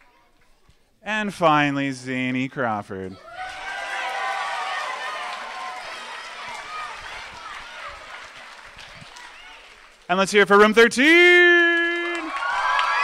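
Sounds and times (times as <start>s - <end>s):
audience cheering and chatter: 3.1s - 10.1s, 12.0s - 13.0s.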